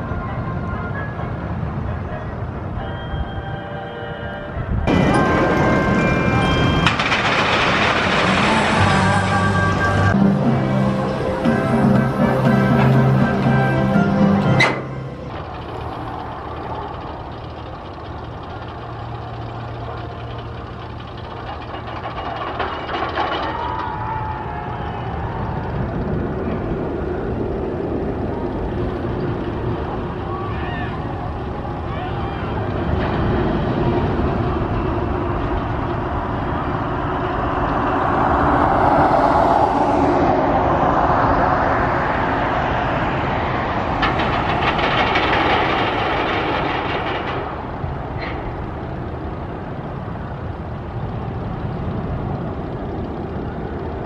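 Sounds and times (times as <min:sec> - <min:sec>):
roller coaster train rumbling: 0:00.0 - 0:54.0.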